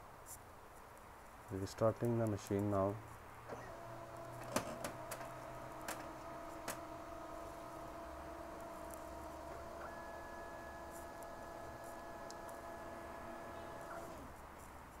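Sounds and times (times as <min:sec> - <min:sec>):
printer motors and fan whirring: 0:02.2 - 0:15.0
sharp mechanical clicks: 0:03.5 - 0:14.2.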